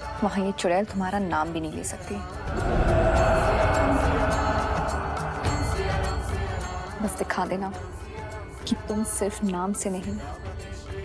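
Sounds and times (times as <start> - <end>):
sustained music tones: 2.2 - 9.2.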